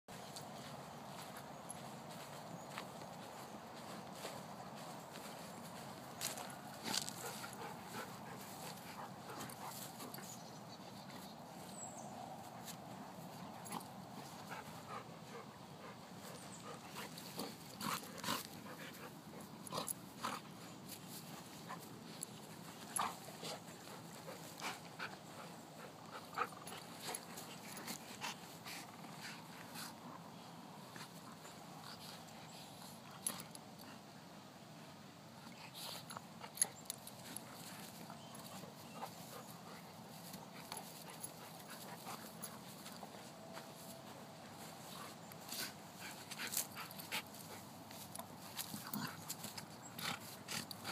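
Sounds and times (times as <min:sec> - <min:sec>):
dogs play-wrestling: 0:00.2 - 0:34.3, 0:35.2 - 0:50.9.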